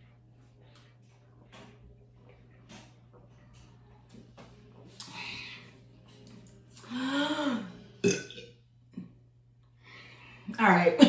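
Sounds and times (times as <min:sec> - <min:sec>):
woman burping: 0:07.4 - 0:08.5.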